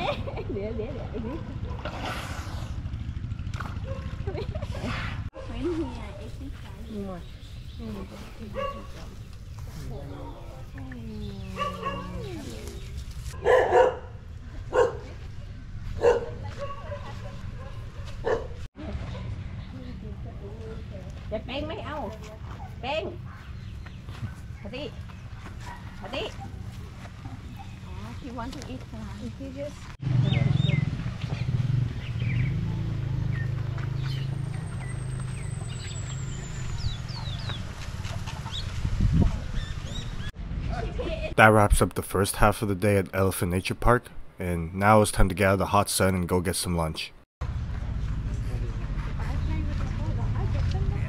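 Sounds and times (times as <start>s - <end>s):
dogs barking: 3.8s - 4.3s, 8.4s - 9.2s, 11.4s - 12.4s, 13.4s - 15.2s, 15.9s - 19.4s, 25.3s - 27.9s, 37.0s - 37.5s
birds chirping: 5.5s - 18.6s, 22.7s - 38.8s, 39.4s - 40.4s.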